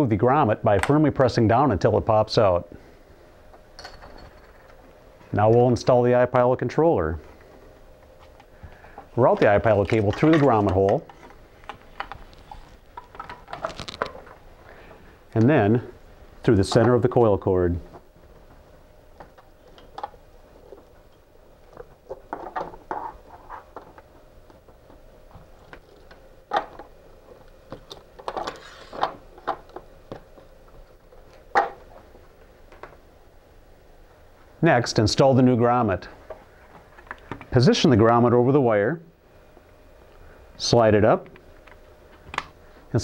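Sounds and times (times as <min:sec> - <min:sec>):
cable clicking and rustling: 0:08.2 - 0:14.4, 0:17.9 - 0:33.0, 0:36.2 - 0:37.5.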